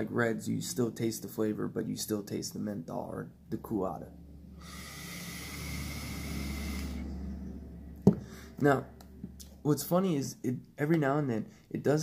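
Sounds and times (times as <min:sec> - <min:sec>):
vape draw hiss: 0:04.6 - 0:07.0
soft exhale: 0:08.2 - 0:08.6.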